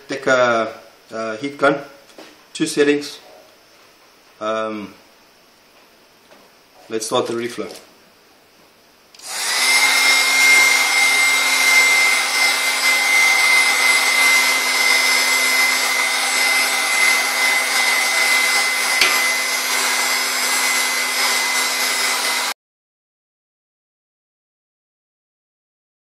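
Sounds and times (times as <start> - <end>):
heat gun fan whining: 9.1 - 22.6.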